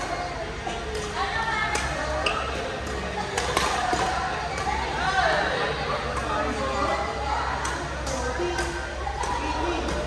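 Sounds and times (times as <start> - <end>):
murmur of voices: 0.0 - 10.0
rackets striking shuttlecock: 0.8 - 4.9, 6.1 - 10.0.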